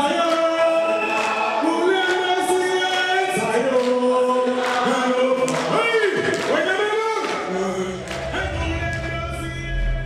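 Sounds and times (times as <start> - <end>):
crowd singing together: 2.6 - 6.3.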